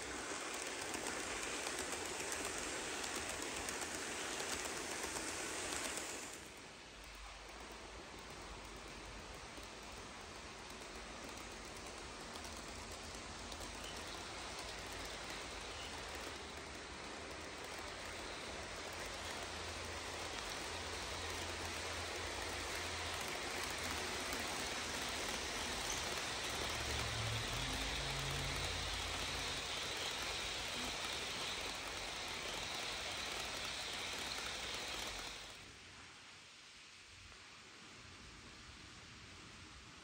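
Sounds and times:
model train wheels on rails: 0.0 - 40.0.

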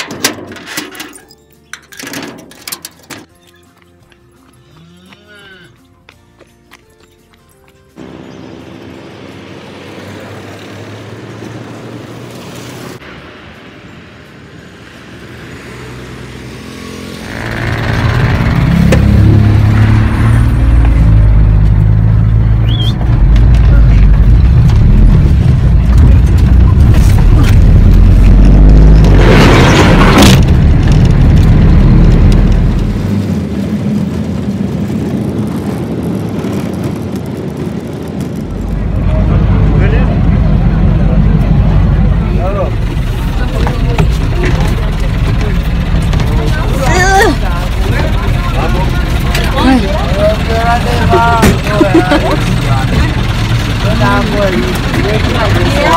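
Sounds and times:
engine and road rumble: 0.0 - 55.9
loud rush of noise: 8.0 - 55.9
voices: 38.6 - 55.9.

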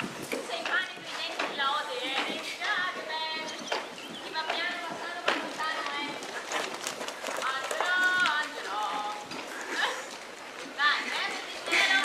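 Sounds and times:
children talking and calling out: 0.4 - 6.5, 7.4 - 12.0.

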